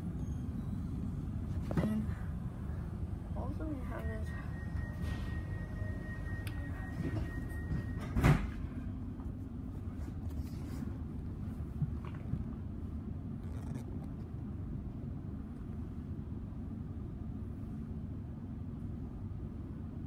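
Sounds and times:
train carriage rumble: 0.0 - 20.0.

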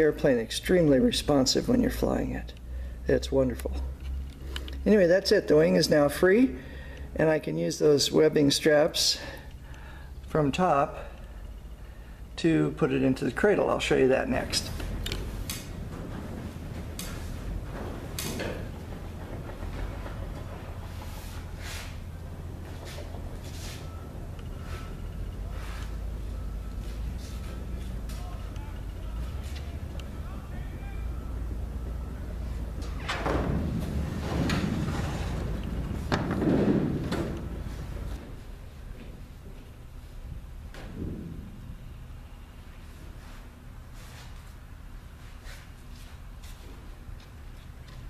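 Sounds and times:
steady low hum: 0.0 - 48.0
metal wing rubbing and scraping: 15.2 - 25.8, 33.3 - 38.2.

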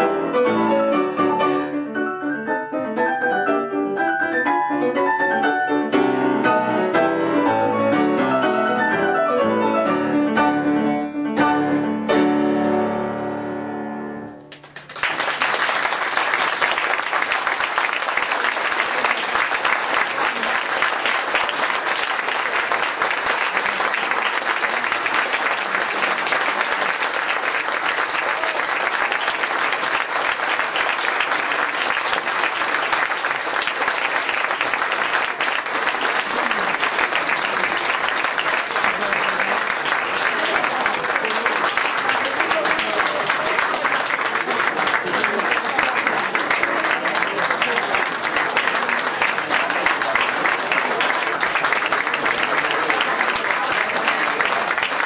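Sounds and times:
audience applauding: 14.2 - 55.0
voices in crowd: 38.6 - 55.0.

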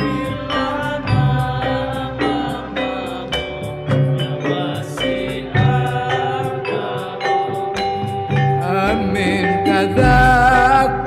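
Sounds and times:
men chanting in unison: 0.0 - 8.0
frame drums beating: 0.0 - 11.0.

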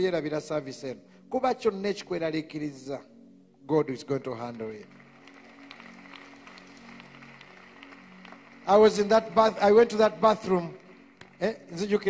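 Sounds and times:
soft held chords music: 0.0 - 12.0.

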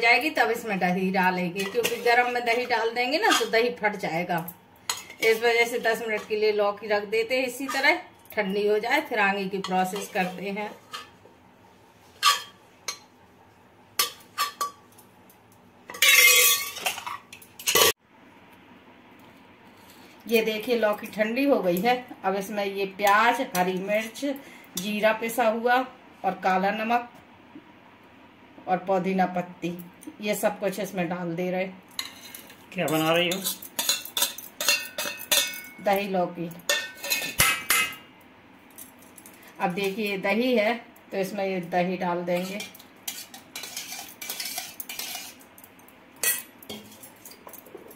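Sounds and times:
steel spoon clinking on bowl: 32.9 - 35.8.

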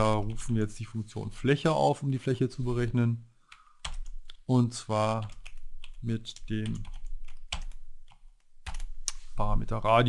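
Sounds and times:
computer keyboard typing: 3.5 - 4.4, 5.2 - 9.1.

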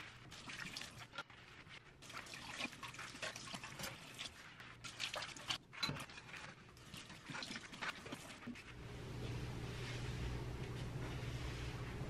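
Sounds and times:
tap water running: 0.0 - 8.9.

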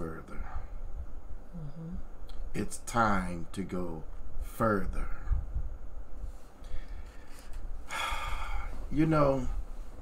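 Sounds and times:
man speaking: 8.9 - 9.6.

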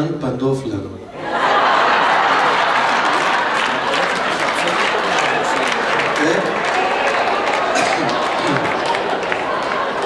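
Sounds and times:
crowd voices: 1.1 - 10.0
audience applauding: 1.3 - 10.0.

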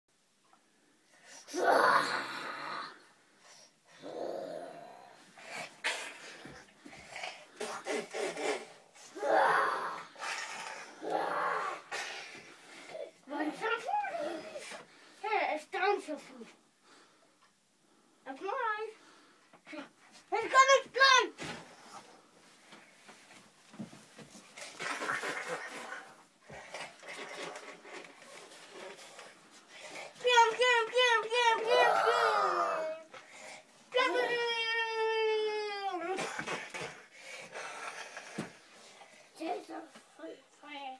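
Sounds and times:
children's faint vocal sounds: 1.1 - 17.1, 24.6 - 40.9
child crying out: 1.5 - 2.9, 9.2 - 10.1, 31.4 - 33.1, 34.0 - 36.0
child growling: 1.5 - 3.1, 4.0 - 6.0, 7.2 - 12.2, 13.4 - 14.7, 31.3 - 33.2.

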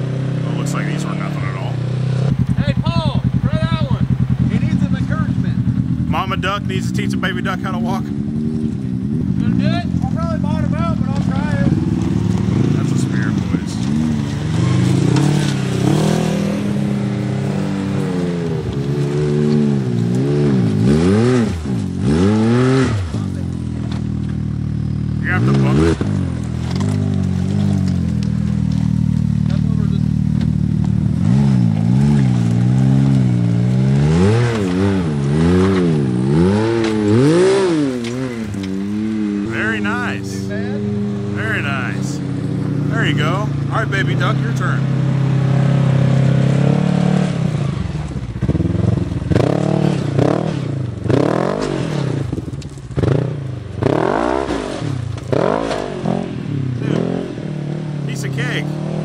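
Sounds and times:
engine revving: 0.0 - 59.0.

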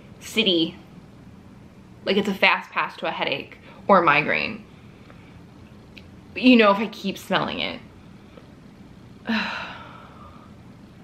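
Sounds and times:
woman sighing: 9.2 - 10.5.

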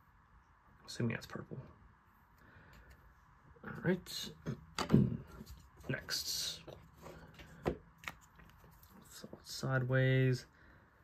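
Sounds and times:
cards rustling: 5.3 - 9.6.

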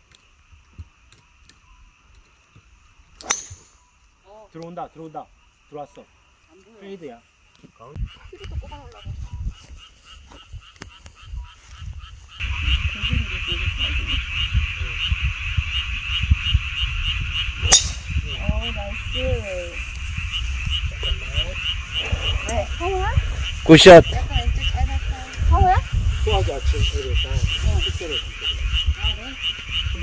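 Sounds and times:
frogs calling: 0.0 - 30.0
golf club striking ball: 3.2 - 3.8, 17.6 - 18.1.

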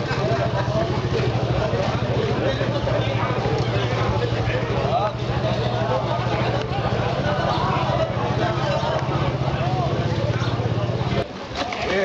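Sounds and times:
people talking: 0.0 - 12.0
traffic rumble: 0.0 - 12.0.

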